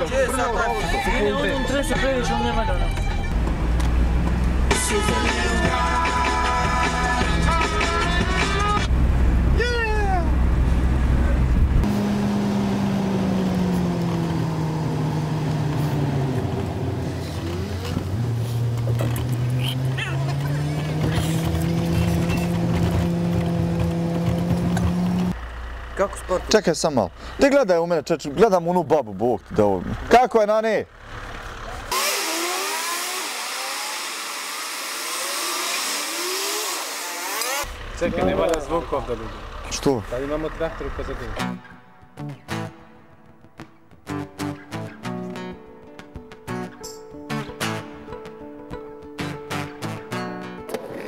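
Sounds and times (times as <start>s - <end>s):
car engine: 0.0s - 42.5s
road noise: 0.0s - 46.6s.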